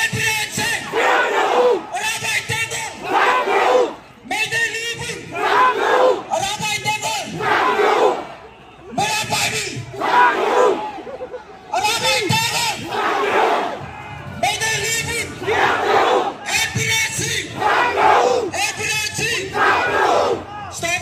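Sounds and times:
crowd shouting slogans in unison: 0.6 - 2.0, 2.8 - 4.0, 5.1 - 6.4, 7.2 - 8.5, 9.2 - 11.1, 12.0 - 14.2, 15.2 - 16.8, 17.4 - 20.7.

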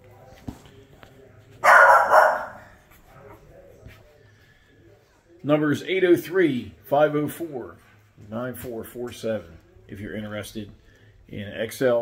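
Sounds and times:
dog barking: 1.6 - 2.8.

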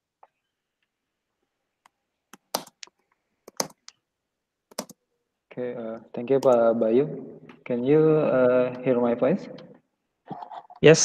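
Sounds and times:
computer keys and mouse clicking: 1.8 - 4.0, 4.7 - 5.0, 6.4 - 6.6.

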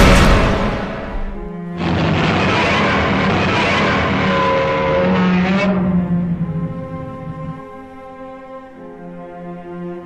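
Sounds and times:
low orchestral music: 0.0 - 10.0
loud harsh noise: 1.7 - 7.9.

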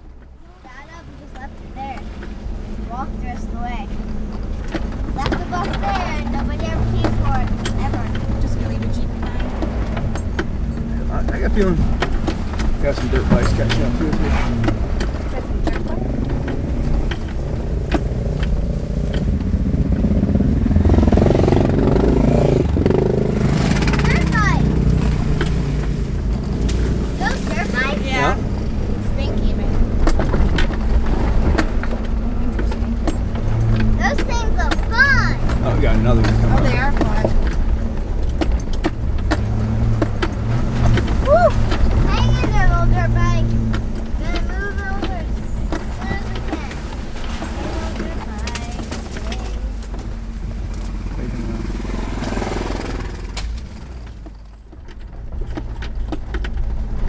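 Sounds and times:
car body rattling over bumps: 0.0 - 57.0
car engine running at low speed: 0.0 - 57.0.

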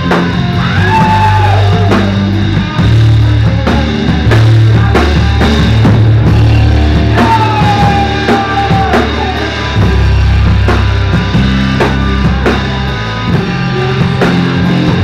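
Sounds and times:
drum kit steady beat: 0.0 - 15.0
electric bass low notes: 0.0 - 15.0
electric guitar: 0.0 - 15.0
rock band playing loudly: 0.0 - 15.0.

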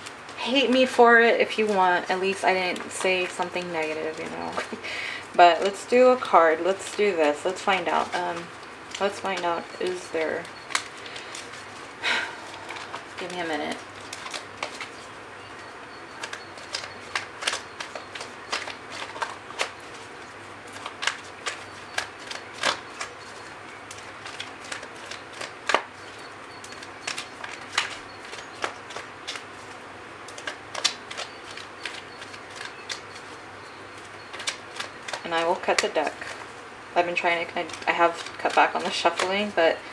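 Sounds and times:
cards being shuffled: 0.0 - 4.9, 5.6 - 15.1, 16.1 - 39.9.

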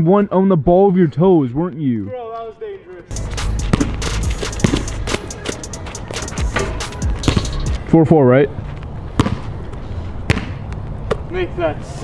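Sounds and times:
basketball bouncing on wet court: 3.7 - 4.0.

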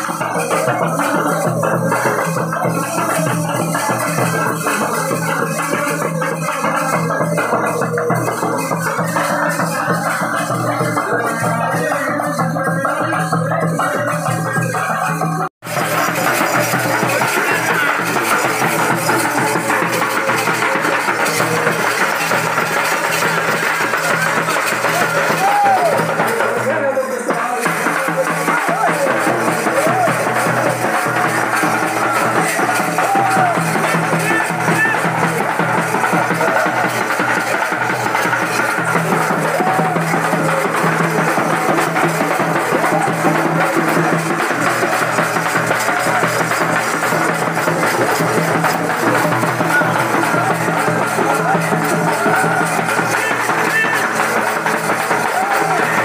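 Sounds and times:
festival music: 0.0 - 56.0
frame drums beaten with sticks: 0.0 - 56.0.

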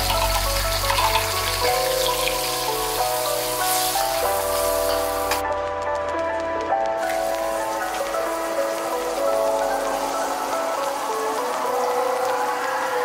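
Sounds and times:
paste sizzling in oil: 0.0 - 5.4, 7.0 - 13.0
background music of held chords: 0.0 - 13.0.

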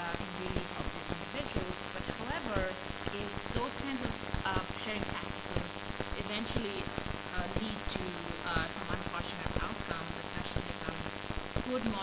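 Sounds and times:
crackling static noise: 0.0 - 12.0.

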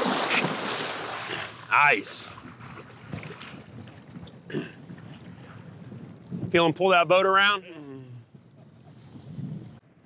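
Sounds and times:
water lapping around boat: 0.0 - 10.0
wind noise on microphone: 2.5 - 10.0.

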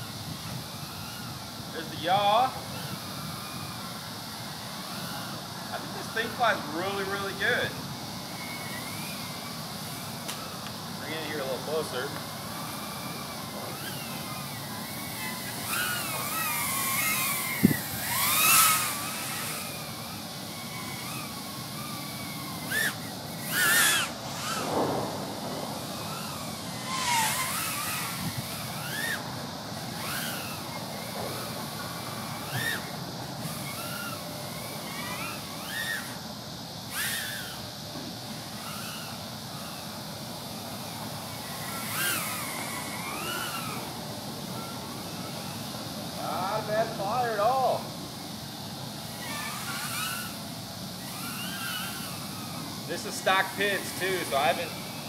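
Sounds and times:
quadcopter propellers whining: 0.0 - 55.0.

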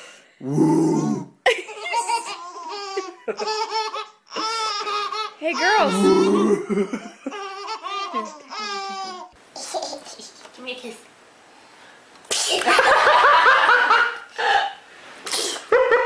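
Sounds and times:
babies laughing: 1.5 - 10.4.

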